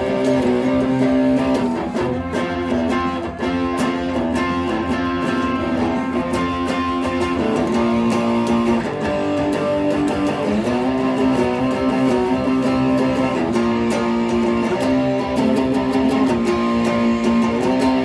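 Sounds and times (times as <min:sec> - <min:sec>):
overdriven electric guitar chords: 0:00.0 - 0:18.0.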